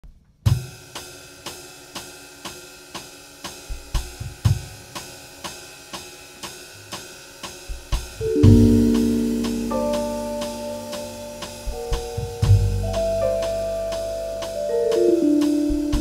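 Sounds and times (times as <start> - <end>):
cymbal strokes: 4.8 - 16.0
bass drum hits: 8.1 - 16.0.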